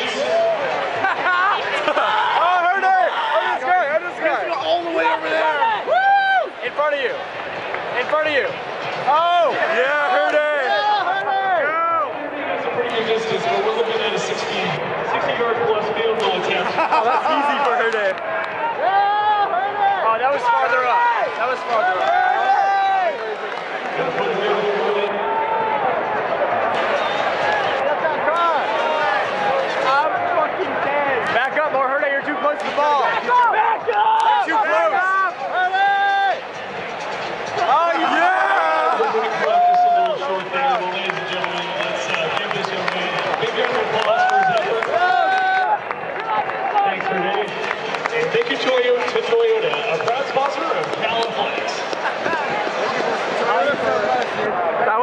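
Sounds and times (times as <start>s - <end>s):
stadium crowd shouting: 0.0s - 55.0s.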